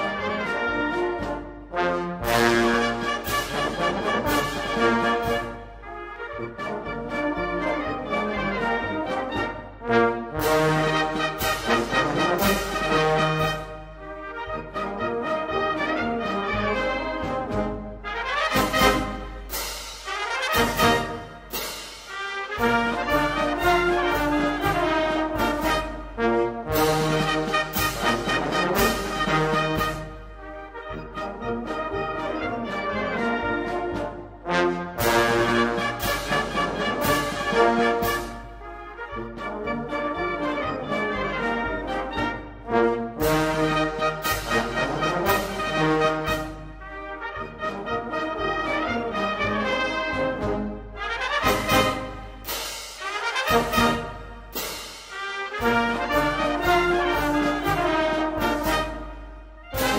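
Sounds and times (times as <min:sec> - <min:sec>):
wind band playing a march: 0:00.0 - 0:59.9.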